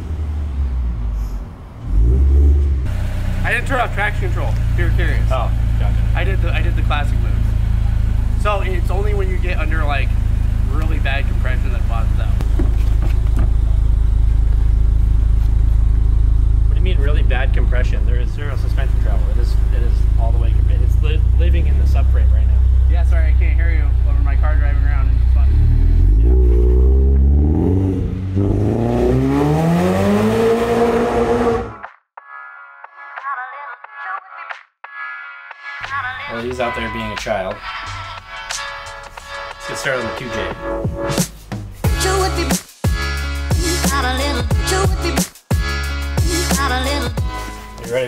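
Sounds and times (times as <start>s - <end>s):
car engine running and revving: 0.0s - 31.9s
people talking: 3.4s - 7.4s, 8.4s - 12.4s, 16.7s - 26.4s, 35.9s - 37.7s, 39.7s - 40.6s, 47.8s - 48.0s.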